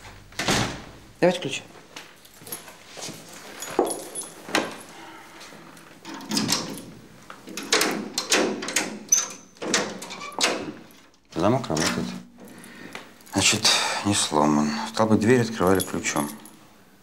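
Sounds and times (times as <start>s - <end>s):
door handle rattling: 6.0s - 10.8s
key turning in door lock: 6.0s - 12.1s.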